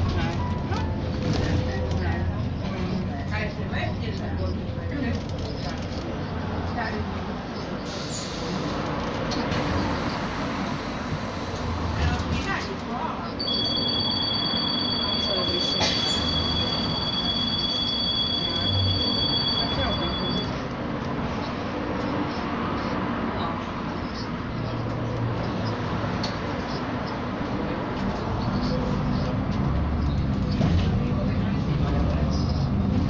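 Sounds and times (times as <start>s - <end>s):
cars driving past: 6.1s - 33.0s
two-note high whine: 13.4s - 20.6s.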